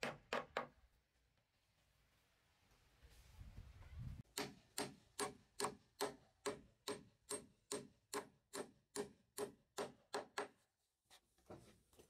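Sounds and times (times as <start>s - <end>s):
hammer driving nail into wood: 4.3s - 10.6s.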